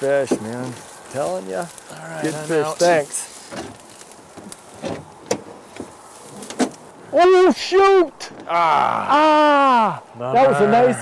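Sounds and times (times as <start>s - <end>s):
riverside hiss: 0.0s - 6.8s.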